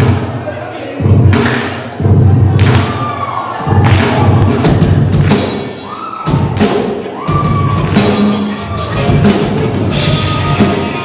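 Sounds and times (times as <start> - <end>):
drum kit hits: 3.9 - 11.0
live rock band playing: 4.4 - 11.0.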